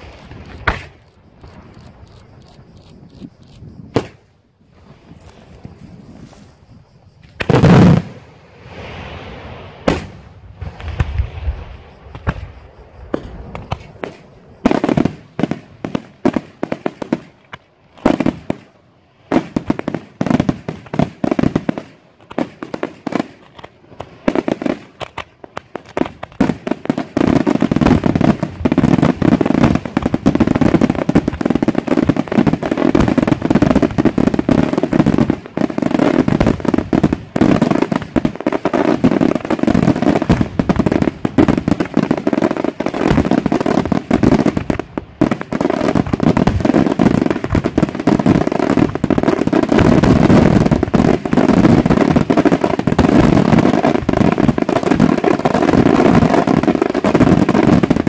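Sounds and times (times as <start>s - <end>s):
fireworks bursting: 0.0s - 58.0s.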